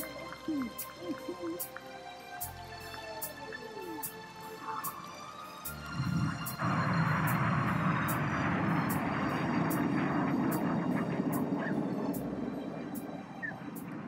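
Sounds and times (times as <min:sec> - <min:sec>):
jets passing overhead: 0:00.0 - 0:14.0.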